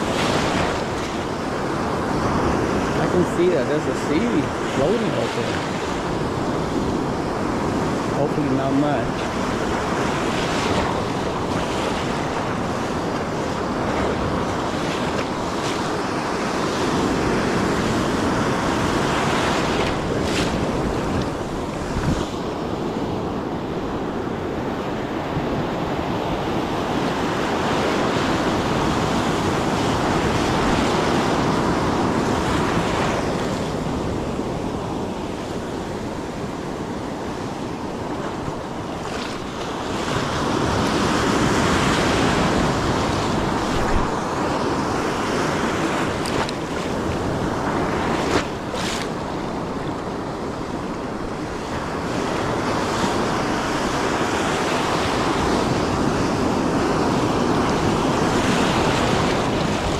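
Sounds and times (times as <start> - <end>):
ocean surf breaking: 0.0 - 59.9
wind buffeting microphone: 0.0 - 59.9.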